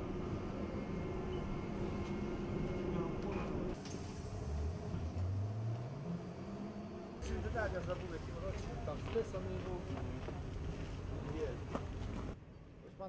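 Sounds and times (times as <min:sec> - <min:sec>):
trolleybus cabin rumble and hum: 0:00.0 - 0:12.4.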